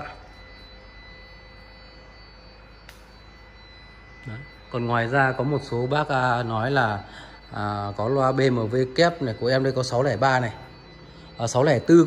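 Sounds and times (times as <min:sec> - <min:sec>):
faint high whine: 0:00.0 - 0:12.0
low steady hum: 0:00.0 - 0:12.0
small click: 0:02.8 - 0:03.1.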